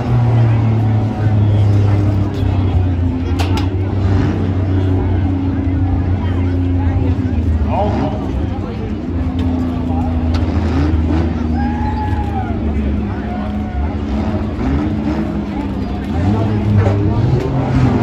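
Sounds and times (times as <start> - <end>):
engines droning and revving: 0.0 - 18.0.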